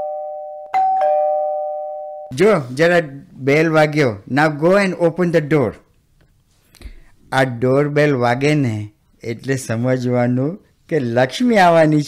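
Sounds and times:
two-tone doorbell chime: 0.0 - 2.3.

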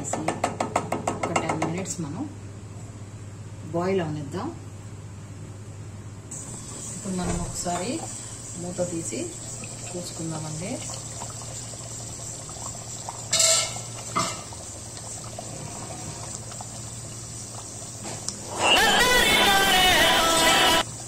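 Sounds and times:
curry gravy bubbling in a pan: 6.5 - 18.3
metal pan lid clattering: 13.3 - 14.4.

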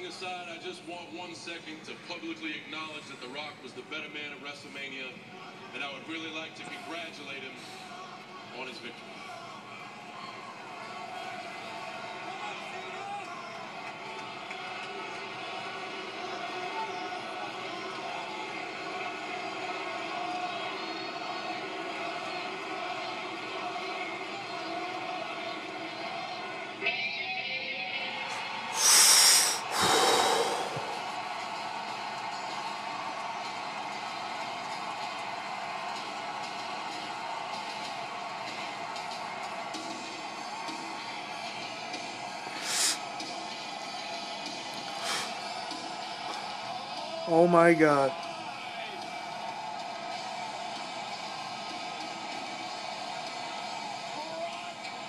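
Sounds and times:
arena crowd noise: 0.0 - 55.0
entrance music on television: 9.7 - 55.0.

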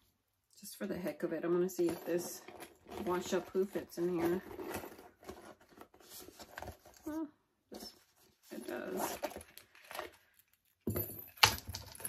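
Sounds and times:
handbag rustling and knocking: 10.9 - 12.0.

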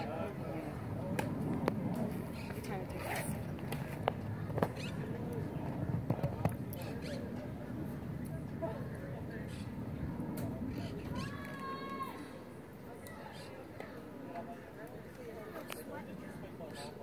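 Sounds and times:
spectators chattering: 0.0 - 17.0.

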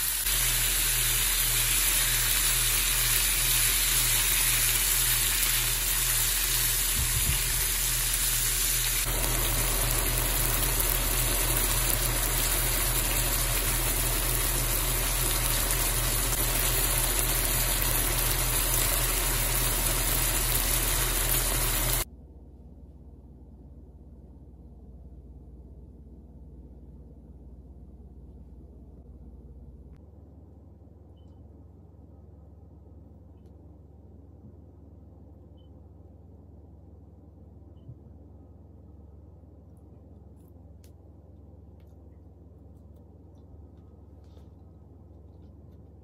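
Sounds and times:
meat and onions sizzling in skillet: 0.0 - 22.1.

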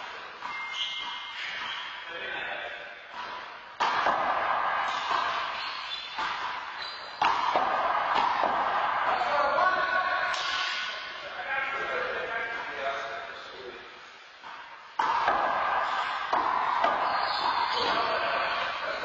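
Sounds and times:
voices echoing in a hall: 0.0 - 19.0.

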